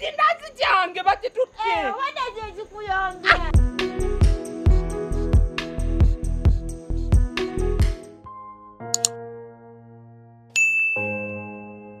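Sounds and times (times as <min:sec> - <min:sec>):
bell-like notification ding: 0:10.6 - 0:11.9.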